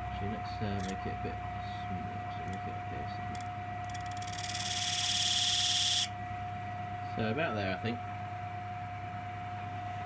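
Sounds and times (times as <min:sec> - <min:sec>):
lathe motor hum: 0:03.4 - 0:06.1
pencil scratching on spinning wood: 0:03.9 - 0:06.1.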